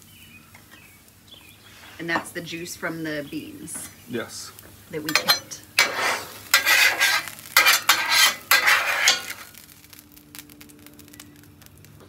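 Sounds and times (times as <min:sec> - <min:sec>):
food sizzling: 0:00.0 - 0:12.0
metal spatula scraping griddle: 0:05.0 - 0:09.6.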